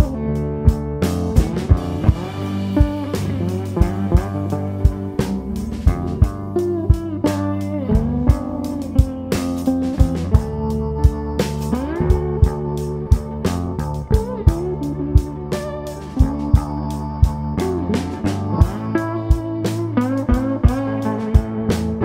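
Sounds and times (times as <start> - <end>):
drum kit beat: 0.0 - 22.0
electric guitar bending notes: 0.0 - 22.0.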